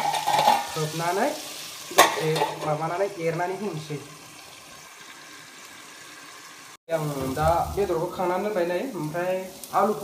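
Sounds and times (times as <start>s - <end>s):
rice pot simmering hiss: 0.1s - 10.0s
person speaking: 6.9s - 10.0s.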